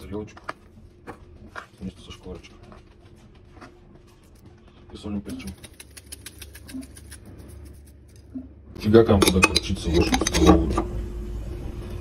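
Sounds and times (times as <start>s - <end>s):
person speaking: 4.8s - 7.0s
seasoning shaker clicks: 5.3s - 8.2s.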